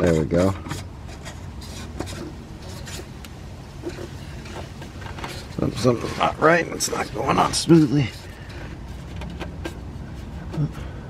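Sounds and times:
plastic cap scraping and clicking: 0:00.0 - 0:10.7.

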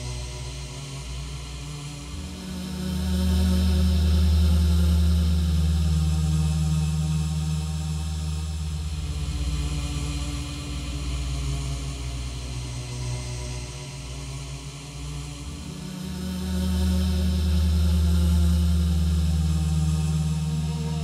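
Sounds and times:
dark ambient music drone: 0:00.0 - 0:21.0.

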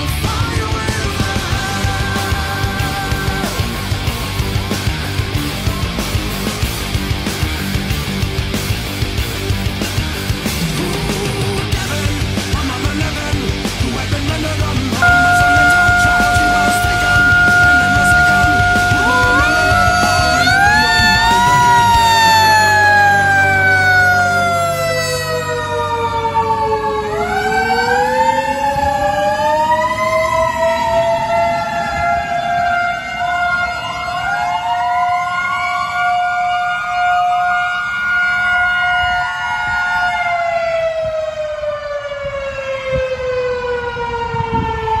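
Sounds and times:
fire truck siren wailing: 0:00.0 - 0:08.3, 0:09.4 - 0:12.8, 0:15.0 - 0:45.0
diesel engine rumbling: 0:00.0 - 0:32.2
steady siren tone: 0:15.0 - 0:45.0.

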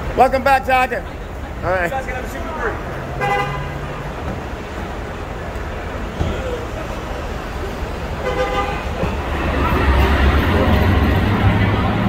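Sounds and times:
steady traffic noise: 0:00.0 - 0:12.0
car horn honks: 0:03.2 - 0:04.0, 0:08.2 - 0:09.0.

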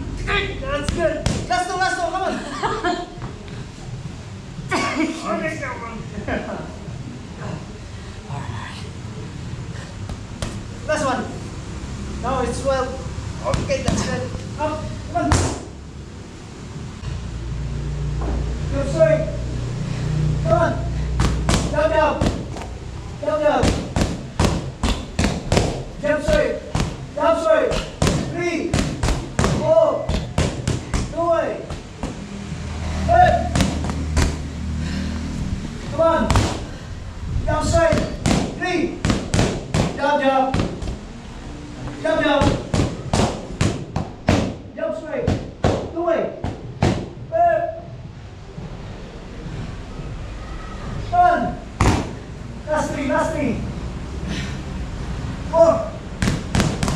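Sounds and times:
low background noise: 0:00.0 - 0:56.9
boxing gloves smacking focus mitts: 0:00.9 - 0:01.5, 0:21.2 - 0:22.8, 0:23.6 - 0:27.1, 0:27.7 - 0:32.2, 0:33.2 - 0:34.5, 0:36.2 - 0:36.7, 0:37.8 - 0:41.0, 0:42.4 - 0:44.6, 0:51.8 - 0:52.2, 0:56.2 - 0:56.9
person shouting: 0:33.0 - 0:33.6.

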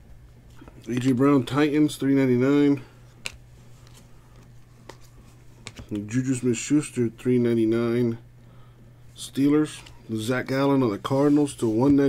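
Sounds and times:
cards clicking while flipped: 0:03.2 - 0:06.1.

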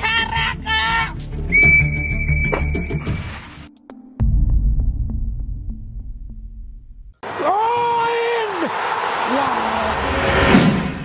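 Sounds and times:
background music with a beat: 0:01.1 - 0:06.5
metal whistle long blast: 0:01.5 - 0:03.3.

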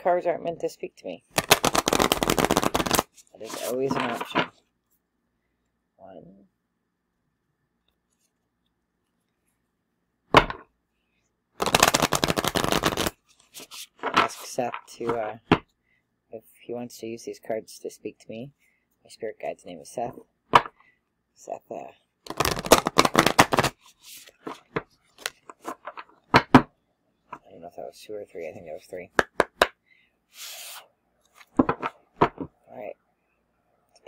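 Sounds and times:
cards being shuffled: 0:01.3 - 0:04.6, 0:11.6 - 0:15.2, 0:22.3 - 0:26.5, 0:29.1 - 0:32.5.

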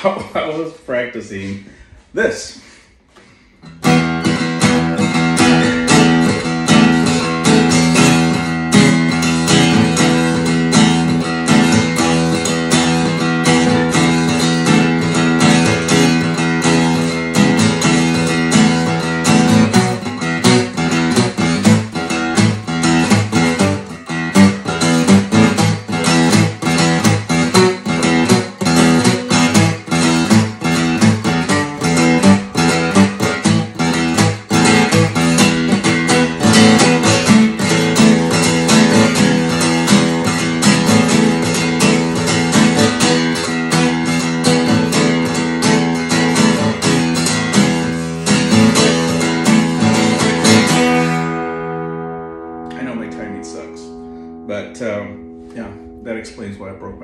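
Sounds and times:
acoustic guitar strummed hard: 0:03.6 - 0:57.0.

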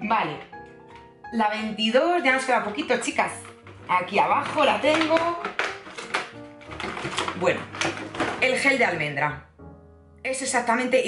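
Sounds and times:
background music: 0:00.0 - 0:11.0
crackling clicks and card rustles: 0:02.6 - 0:08.8.

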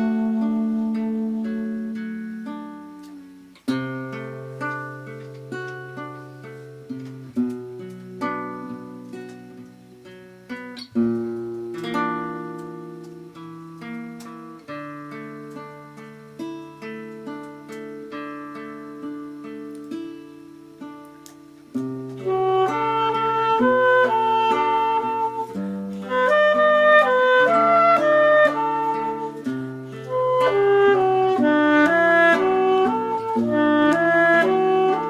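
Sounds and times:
acoustic classical guitar: 0:00.0 - 0:35.0.

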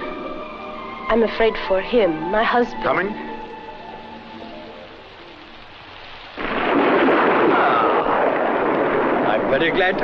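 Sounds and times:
rain hissing: 0:00.0 - 0:10.0
thunder and heavy rain: 0:05.5 - 0:10.0.

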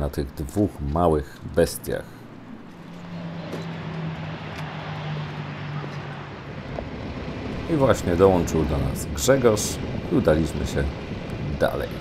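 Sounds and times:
road and wind noise: 0:00.0 - 0:12.0
motorcycle engine cruising: 0:01.5 - 0:10.2.

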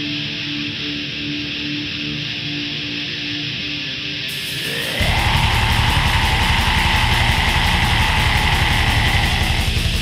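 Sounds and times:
distorted guitars: 0:00.0 - 0:10.0
rapid kick-drum hits: 0:05.0 - 0:10.0.

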